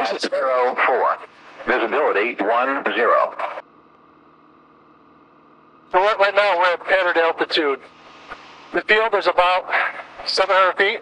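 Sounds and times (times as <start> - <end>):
man speaking: 0.0 - 3.6, 5.9 - 7.9, 8.7 - 11.0
light airplane engine humming: 0.0 - 11.0.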